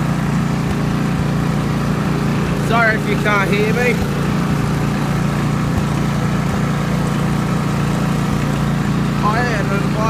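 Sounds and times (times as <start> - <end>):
lawn mower engine running: 0.0 - 10.0.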